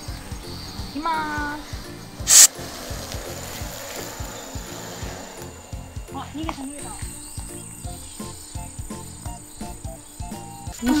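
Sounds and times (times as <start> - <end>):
background music with steady beat: 0.0 - 11.0
aerosol spray hiss: 1.3 - 5.5.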